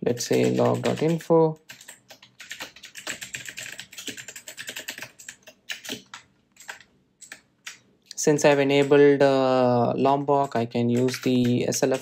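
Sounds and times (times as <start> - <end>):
typing on computer keyboard: 0.1 - 9.1, 10.2 - 12.0.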